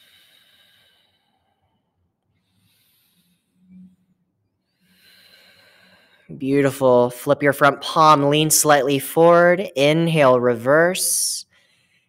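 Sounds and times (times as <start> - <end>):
person breathing slowly: 0.0 - 6.3.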